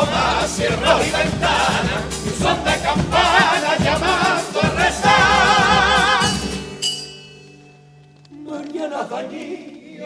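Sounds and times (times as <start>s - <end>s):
bass drum: 0.0s - 6.6s
male chorus singing in harmony: 0.0s - 6.6s, 8.4s - 10.0s
guitars: 0.0s - 9.8s.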